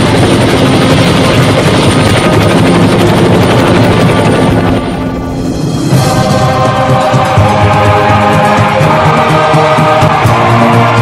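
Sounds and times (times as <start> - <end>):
helicopter rotor blades chopping: 0.0 - 11.0.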